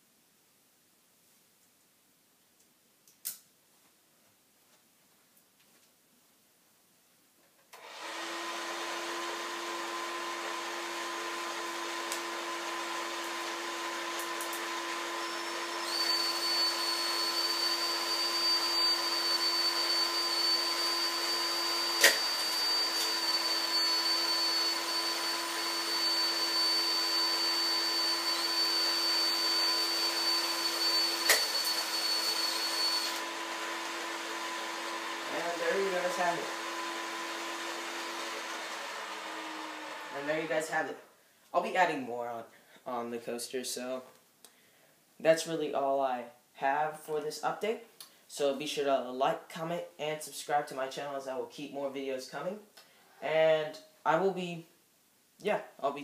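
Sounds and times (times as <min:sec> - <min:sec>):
power drill running: 0:07.8 - 0:40.9.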